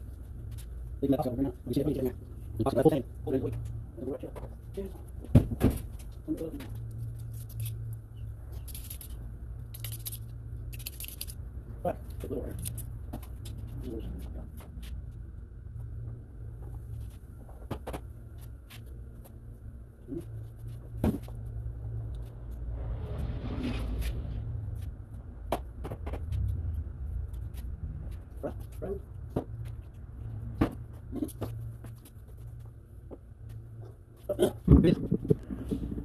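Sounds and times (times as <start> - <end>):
steady low hum: 0.0 - 36.0.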